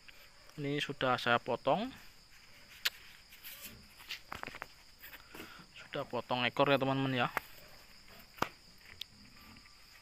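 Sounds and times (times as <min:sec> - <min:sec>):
high insect drone: 0:00.0 - 0:10.0
piglets rooting on dirt: 0:07.2 - 0:10.0.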